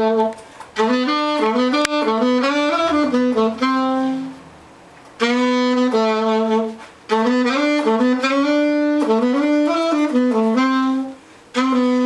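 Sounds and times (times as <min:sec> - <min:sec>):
alto saxophone playing: 0:00.0 - 0:12.0.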